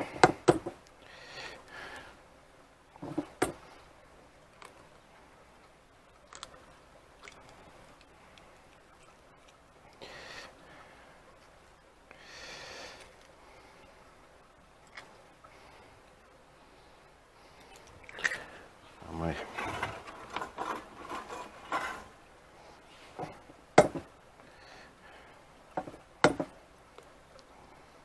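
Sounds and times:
soft breaths: 1.0 - 2.3, 3.5 - 4.1, 7.2 - 23.6, 24.3 - 25.7, 27.1 - 28.0.

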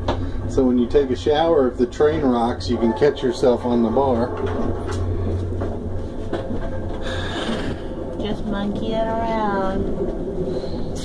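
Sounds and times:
train interior rumble: 0.0 - 11.0.

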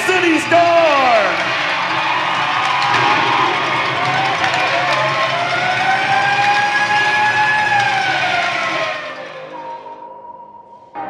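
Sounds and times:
arena crowd cheering: 0.0 - 9.6.

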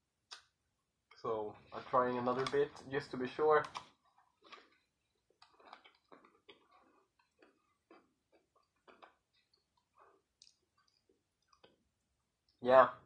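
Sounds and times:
chewing crispy chocolate: 3.7 - 12.6.

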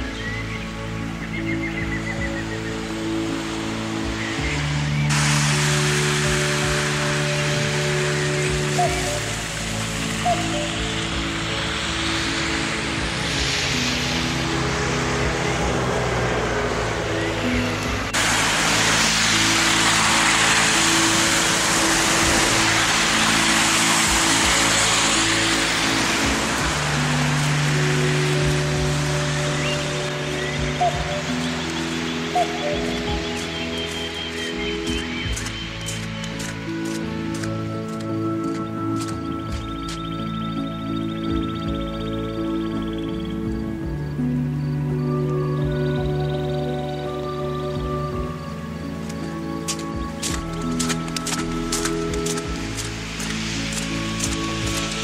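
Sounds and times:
slow held music chords: 0.0 - 55.0
steady hiss-like layer: 1.9 - 55.0.

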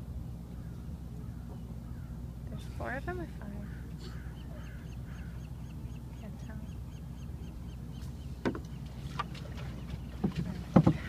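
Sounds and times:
low background rumble: 0.0 - 11.0
bird chirping: 4.1 - 8.9.

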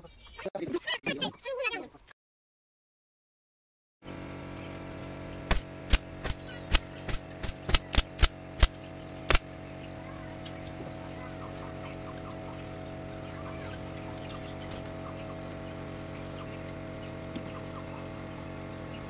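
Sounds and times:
pneumatic staple gun shots: 5.5 - 9.5.

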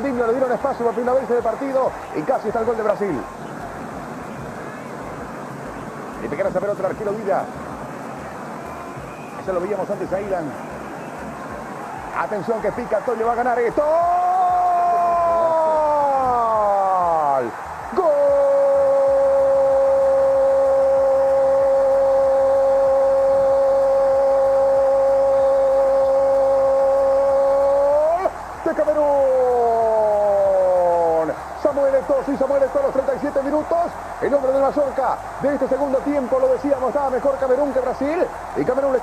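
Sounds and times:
football commentator shouting goal: 12.2 - 39.0.

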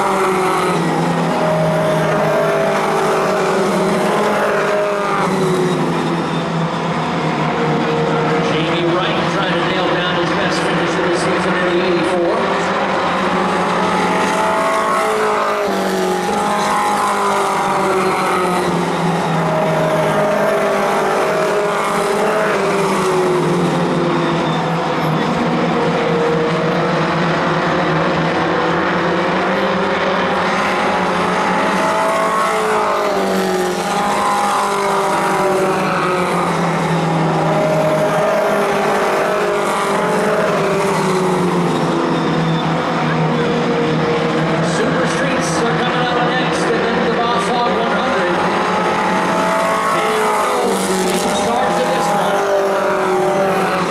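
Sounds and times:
race car engines: 0.0 - 53.9.

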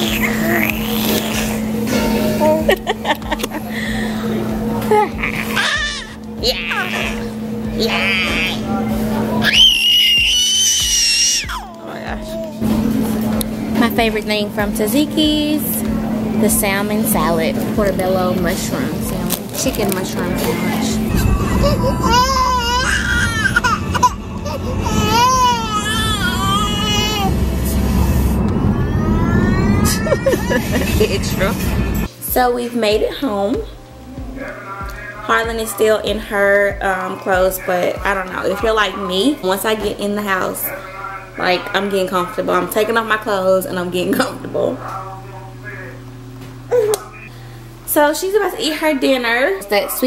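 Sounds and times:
baby squealing: 0.0 - 1.6, 5.2 - 8.6, 9.4 - 11.8, 21.2 - 27.3, 28.7 - 30.8
infant crying: 0.0 - 1.6, 5.0 - 8.6, 9.4 - 12.5, 21.1 - 27.4, 28.6 - 31.0
steady low hum: 0.0 - 50.0
car cabin road rumble: 12.6 - 32.1
faint rising whine: 14.6 - 32.1.

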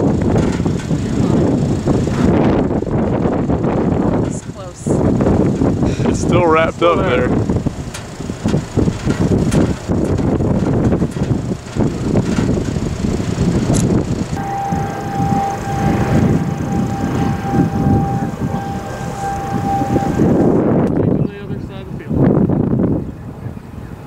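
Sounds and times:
wind gusting against microphone: 0.0 - 24.0
steady siren tone: 14.4 - 21.1.

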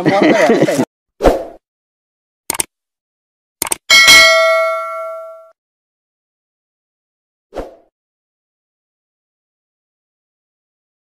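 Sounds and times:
notification bell ding: 3.9 - 5.6.

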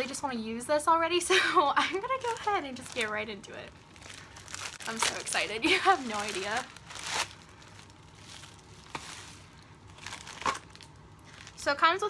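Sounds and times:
padded mailer rustling: 2.0 - 3.3, 3.9 - 11.7.

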